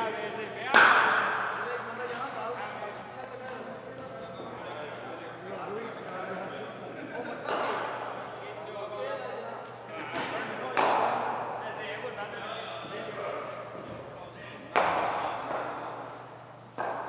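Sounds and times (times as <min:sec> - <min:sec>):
cricket ball cracks with echo: 0:00.7 - 0:01.6, 0:10.2 - 0:11.3.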